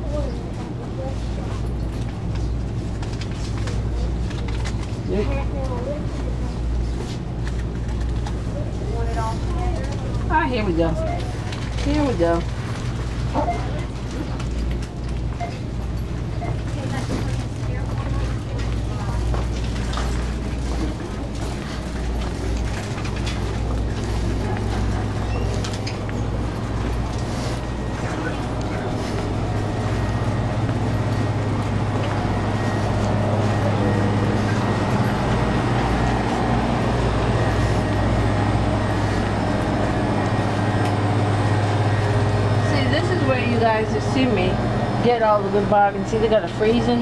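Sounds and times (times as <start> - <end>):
faint indistinct voices: 0.0 - 14.6, 16.3 - 44.5
shopping cart rolling: 7.8 - 47.0
low hum: 11.0 - 47.0.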